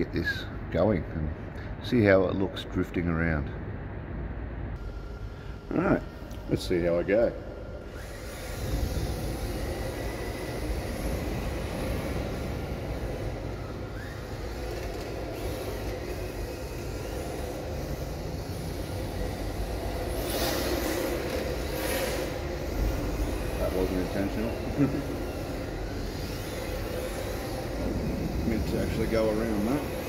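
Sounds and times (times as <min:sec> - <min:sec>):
rc car motor rumble: 0:04.8 - 0:30.0.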